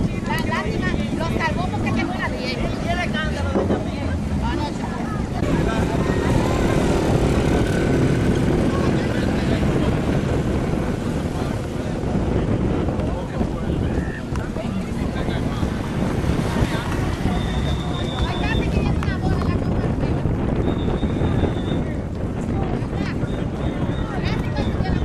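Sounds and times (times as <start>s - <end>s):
motorcycle engines running: 0.0s - 25.0s
voices of marching crowd: 0.0s - 25.0s
wind rumble on microphone: 0.0s - 25.0s.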